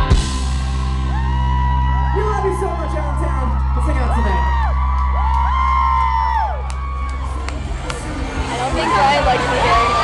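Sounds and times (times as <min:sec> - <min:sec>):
crowd whooping: 0:00.4 - 0:10.0.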